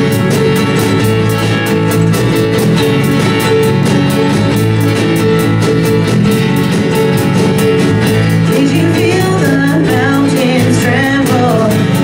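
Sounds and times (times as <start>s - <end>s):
drum kit steady beat: 0.0s - 12.0s
strummed acoustic guitar: 0.0s - 12.0s
ukulele strumming: 0.0s - 12.0s.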